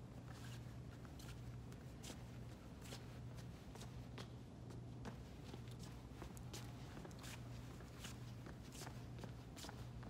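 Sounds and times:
steady low hum: 0:00.0 - 0:10.0
soft footsteps: 0:00.1 - 0:10.0.

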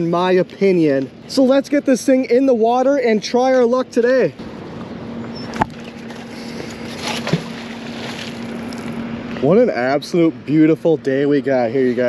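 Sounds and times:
steady low hum: 0:00.0 - 0:12.0
wind: 0:00.0 - 0:12.0
magnet splashing into water: 0:06.9 - 0:09.0.

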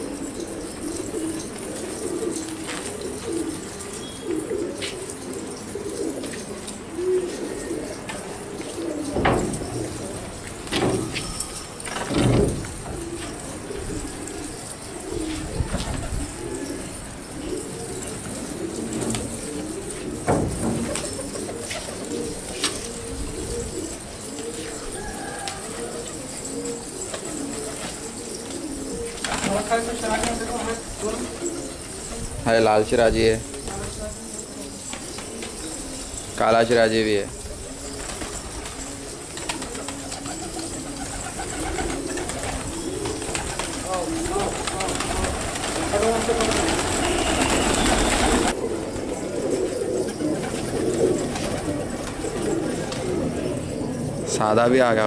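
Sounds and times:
pigeons cooing: 0:00.0 - 0:55.0.

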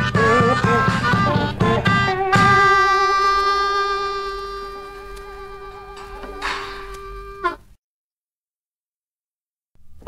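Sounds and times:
buzzing sustained blues note: 0:00.0 - 0:07.7.

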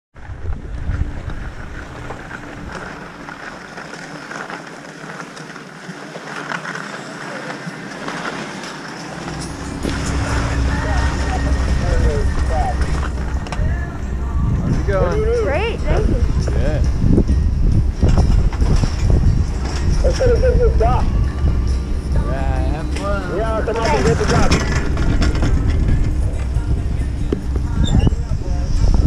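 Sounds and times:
wind rumble on microphone: 0:00.2 - 0:04.0, 0:09.1 - 0:29.0
skis scraping over packed snow: 0:00.3 - 0:14.0.

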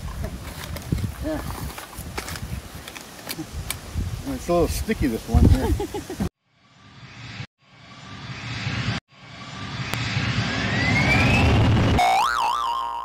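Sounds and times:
rising whooshes: 0:06.6 - 0:12.0
rising whistle: 0:06.8 - 0:13.0
wobbling cartoon boing: 0:12.0 - 0:13.0.

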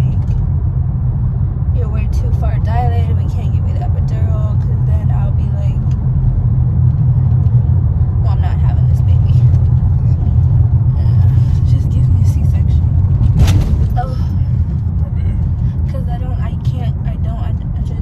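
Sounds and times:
car road and engine rumble: 0:00.0 - 0:18.0.

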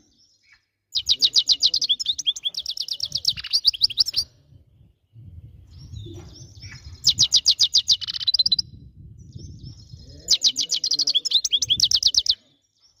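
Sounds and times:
goldfinch singing: 0:00.1 - 0:04.4, 0:05.7 - 0:12.4.

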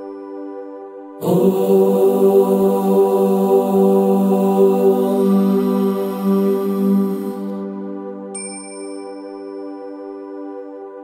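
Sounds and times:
man chanting om: 0:01.2 - 0:08.0
steady musical drone: 0:01.2 - 0:08.4
high chime ringing: 0:08.4 - 0:09.7.

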